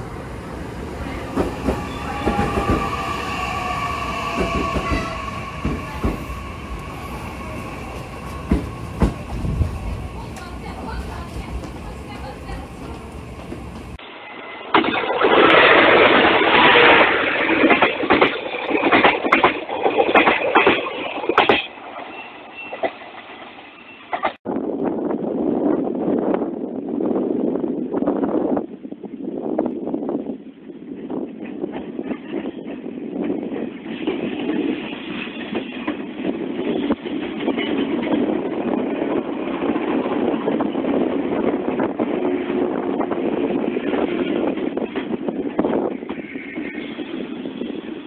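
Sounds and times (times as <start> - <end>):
wind on microphone: 0.0 - 14.0, 24.5 - 48.0
train rumbling past: 0.0 - 28.6, 29.3 - 48.0
train wheels clattering: 0.8 - 14.0
rolling hiss with high squeal: 0.9 - 10.3.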